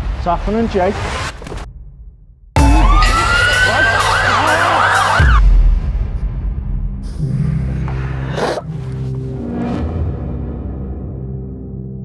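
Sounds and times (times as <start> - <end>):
emergency sirens wailing and yelping: 2.6 - 5.4.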